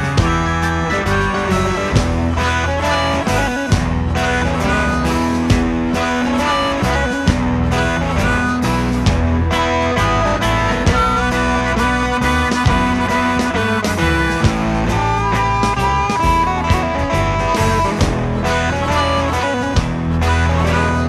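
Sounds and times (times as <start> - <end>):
guitar notes: 0.0 - 21.0
heavy bass line: 0.0 - 21.0
drum hits: 3.5 - 20.7.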